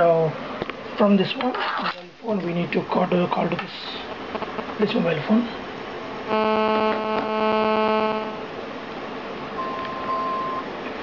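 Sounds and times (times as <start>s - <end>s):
buzzy electronic phone ringtone: 6.3s - 8.4s.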